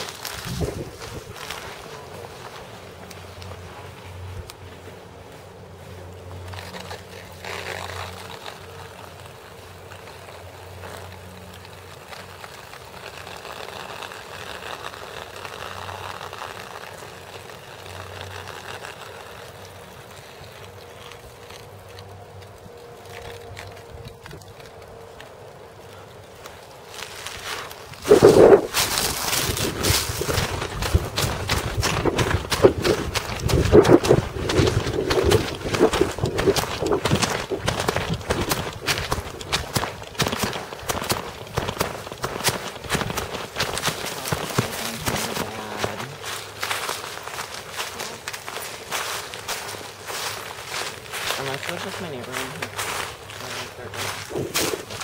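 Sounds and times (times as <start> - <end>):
footsteps crunching through undergrowth: 0.0 - 55.0.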